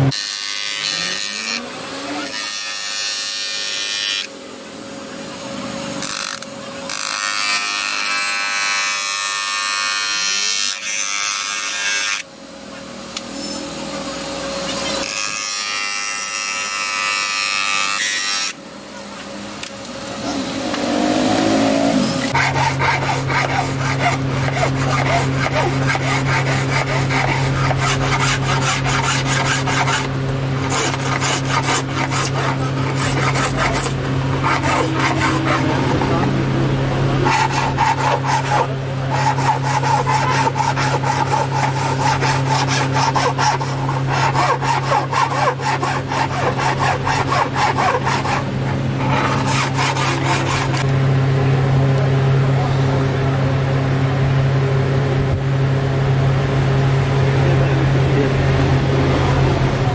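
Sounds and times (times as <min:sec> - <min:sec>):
motor humming: 0:18.5 - 0:53.4.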